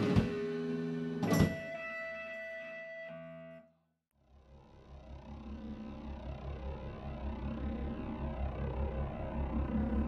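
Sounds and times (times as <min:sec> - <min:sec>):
faint low rumble with pulses: 0:04.3 - 0:10.0.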